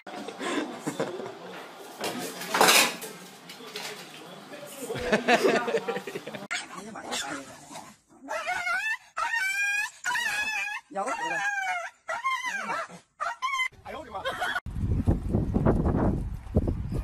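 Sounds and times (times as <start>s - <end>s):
small dogs whining and yowling: 8.3s - 13.8s.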